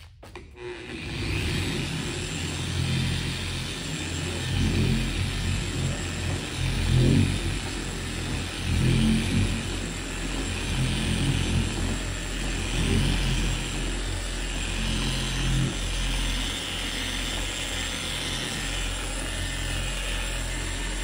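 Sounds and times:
polisher motor hum: 0.2 - 21.0.

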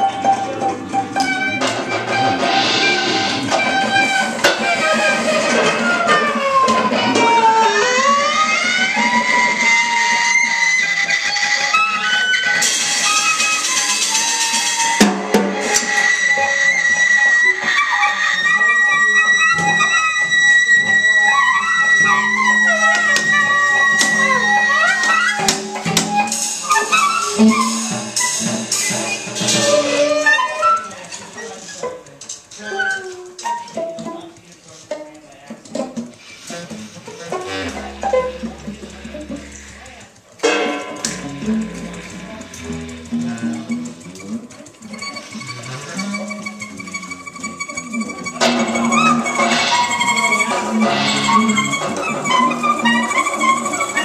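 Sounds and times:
clarinet: 0.0 - 34.4, 35.8 - 54.0
cello: 0.0 - 54.0.

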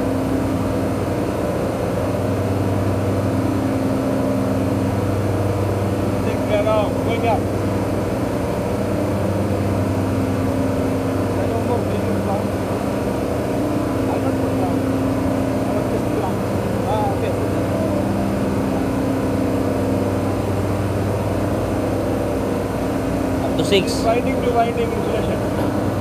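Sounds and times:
air conditioning hum: 0.0 - 26.0.

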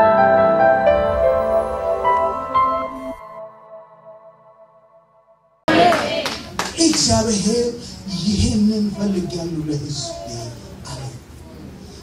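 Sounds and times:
congregation clapping: 5.7 - 7.4.

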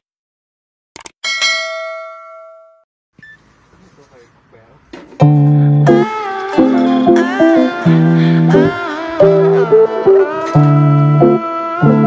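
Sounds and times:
bell ding: 1.2 - 2.8.

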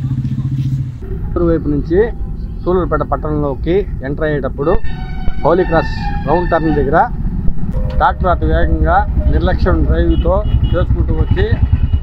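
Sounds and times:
road traffic rumble: 0.0 - 12.0
man talking: 1.0 - 7.2, 7.8 - 11.6.

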